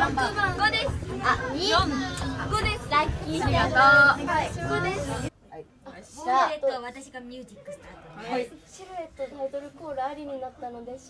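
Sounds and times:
girls chattering excitedly: 0.0 - 5.3.

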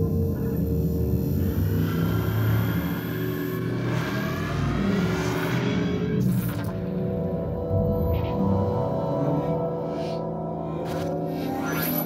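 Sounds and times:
low electronic drone: 0.0 - 12.0.

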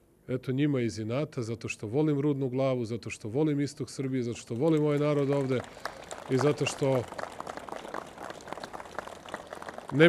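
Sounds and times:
people applauding: 4.4 - 10.0.

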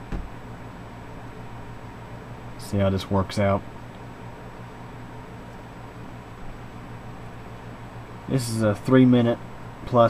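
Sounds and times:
short low thump: 0.0 - 0.3
low room hum: 0.0 - 10.0.

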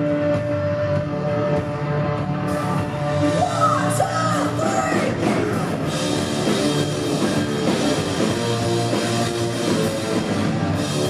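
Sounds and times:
live hard rock band: 0.0 - 11.0
woman singing and yelling: 3.4 - 5.3.

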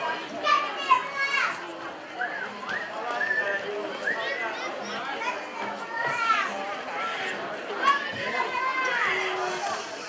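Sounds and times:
spectators' voices: 0.0 - 10.0
children calling out: 4.1 - 10.0.

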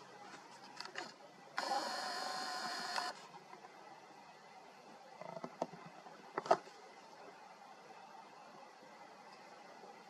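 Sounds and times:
small electric motor whirring: 1.6 - 3.2.

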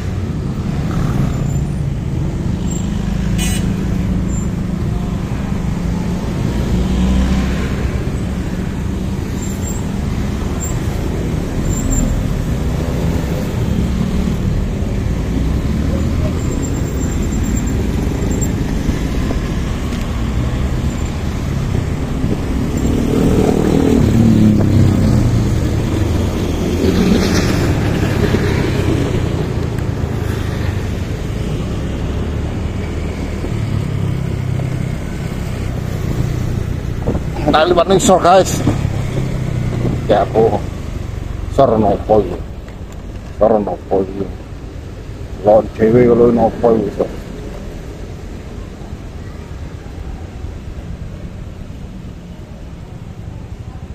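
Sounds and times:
motorcycle engine and road rumble: 0.0 - 53.9
passing cars and motorbikes: 0.0 - 53.9
loud engine passing: 10.3 - 41.8.

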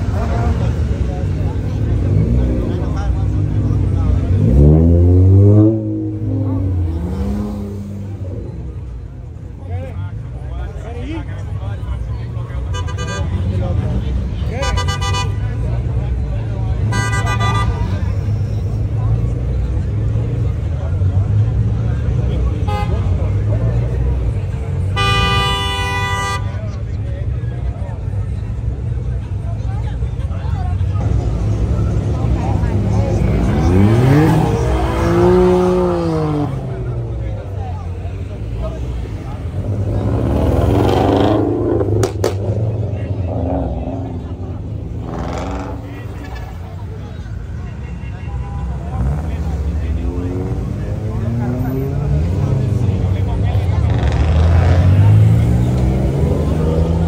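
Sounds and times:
idling cars rumble: 0.0 - 57.0
engine revving: 1.5 - 8.5, 31.0 - 37.2, 38.4 - 46.2, 48.8 - 57.0
car horns beeping: 12.6 - 13.5, 14.5 - 15.6, 16.8 - 18.3, 22.6 - 23.3, 24.8 - 26.8.

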